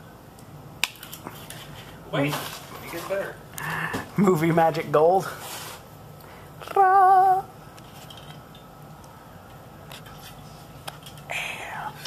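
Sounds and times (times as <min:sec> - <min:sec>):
man gasping: 0:03.6 - 0:04.1.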